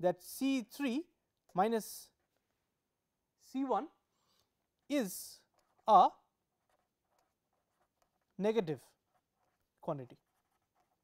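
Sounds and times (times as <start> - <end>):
person speaking: 0.0 - 2.6, 3.3 - 11.0
pen scratching on paper: 4.6 - 11.0.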